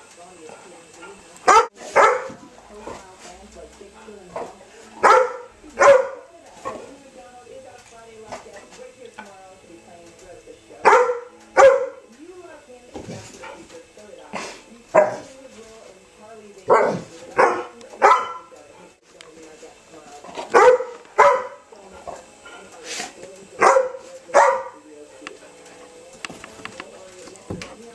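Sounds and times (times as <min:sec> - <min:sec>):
dog barking: 0:01.4 - 0:02.4, 0:04.4 - 0:06.8, 0:10.8 - 0:12.0, 0:14.9 - 0:15.3, 0:16.7 - 0:18.5, 0:20.5 - 0:21.6, 0:23.6 - 0:24.8.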